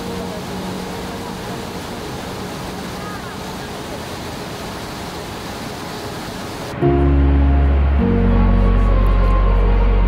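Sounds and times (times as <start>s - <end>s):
waterfall rushing: 0.0s - 10.0s
music with deep bass: 6.8s - 10.0s.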